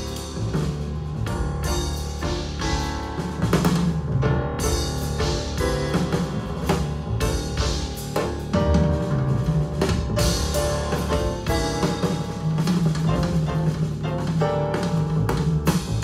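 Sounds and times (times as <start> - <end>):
bass: 0.0 - 16.0
drum kit steady beat: 0.0 - 16.0.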